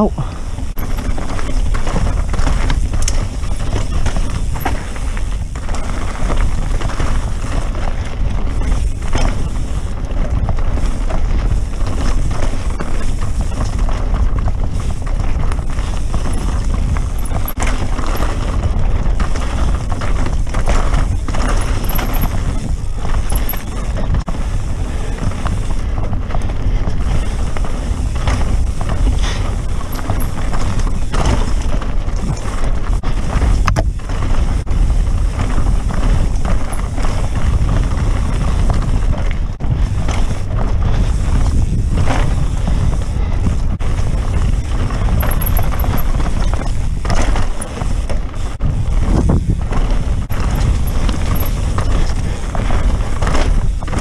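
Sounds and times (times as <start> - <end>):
bike rattling over bumps: 0.0 - 54.0
bike tyres rolling on dirt: 0.0 - 54.0
wind rush on microphone: 0.0 - 54.0.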